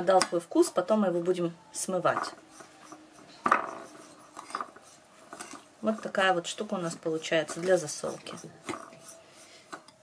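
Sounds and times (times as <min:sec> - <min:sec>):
fork stirring salt in ceramic bowl: 0:02.3 - 0:10.0.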